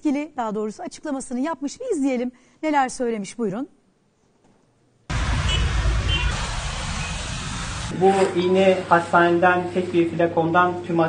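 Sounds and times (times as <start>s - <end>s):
road traffic rumble: 5.1s - 8.2s.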